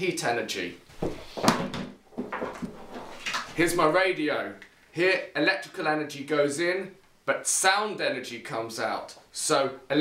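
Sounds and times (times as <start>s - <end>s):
household objects knocking and clunking: 1.0s - 3.6s.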